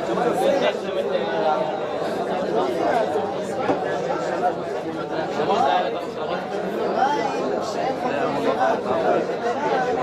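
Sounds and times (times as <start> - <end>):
babble of overlapping voices: 0.0 - 10.0.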